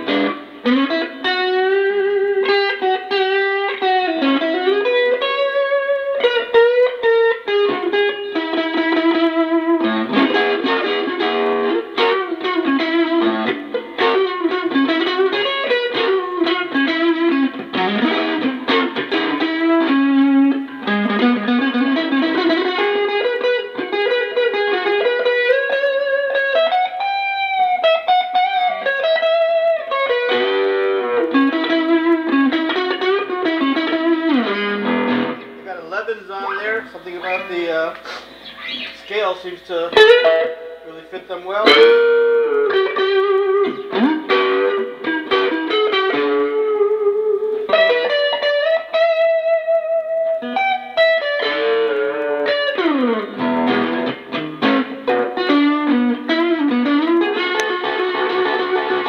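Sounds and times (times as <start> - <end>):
electric guitar melody: 0.0 - 59.0.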